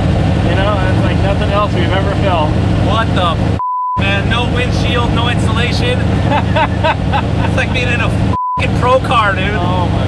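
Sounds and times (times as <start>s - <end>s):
car engine idling: 0.0s - 10.0s
man talking and laughing: 5.6s - 10.0s.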